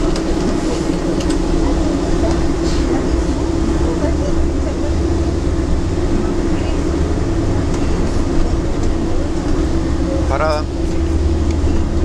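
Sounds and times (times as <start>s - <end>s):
coach engine and road rumble: 0.0s - 12.0s.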